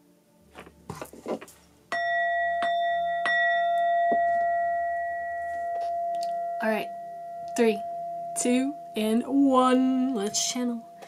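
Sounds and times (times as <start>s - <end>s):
bell-like tone ringing: 1.9s - 11.0s.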